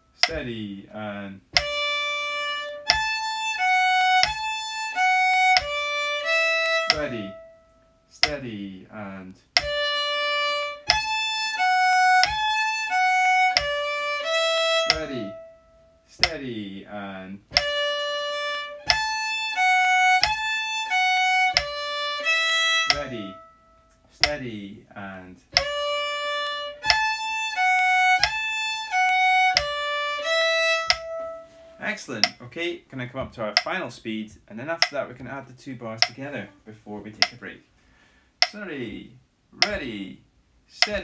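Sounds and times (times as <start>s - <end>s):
person counting in: 0.2s - 2.0s, 6.9s - 7.4s, 8.1s - 9.9s, 14.9s - 15.4s, 16.1s - 17.8s, 22.9s - 23.4s, 24.0s - 26.0s, 38.4s - 41.0s
fiddle playing bowed notes: 1.5s - 8.0s, 9.6s - 16.4s, 17.5s - 24.4s, 25.5s - 32.0s.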